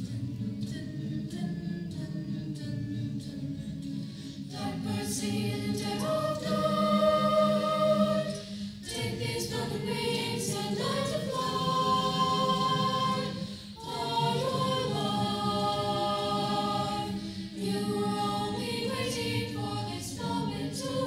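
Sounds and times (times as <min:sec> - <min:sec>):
choir singing held chords: 0:00.0 - 0:21.0.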